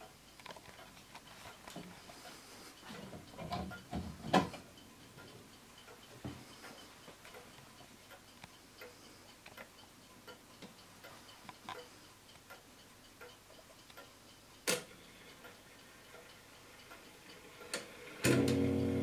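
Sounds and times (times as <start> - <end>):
clock ticking: 0.0 - 19.0.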